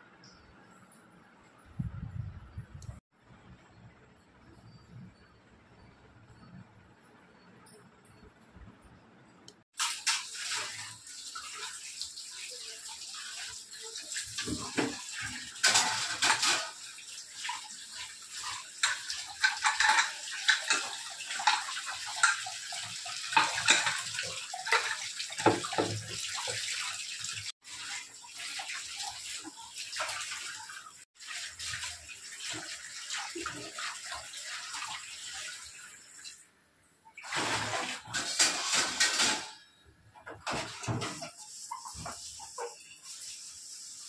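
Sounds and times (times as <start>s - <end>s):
tap water splashing in sink: 9.8s - 35.6s, 40.2s - 43.4s.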